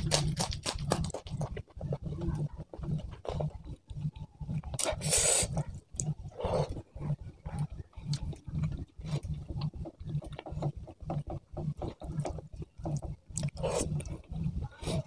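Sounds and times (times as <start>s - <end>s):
close chewing: 0.0s - 15.0s.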